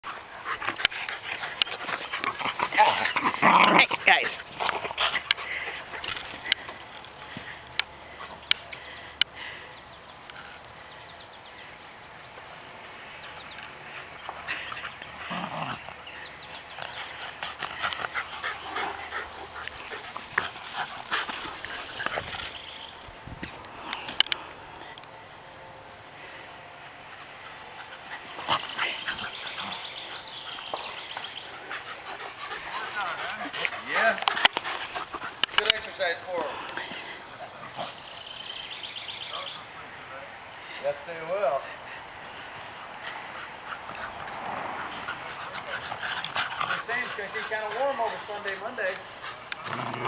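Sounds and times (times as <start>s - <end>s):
dogs barking and yapping: 0.0s - 8.9s, 13.6s - 24.3s, 26.8s - 40.1s, 41.8s - 50.0s.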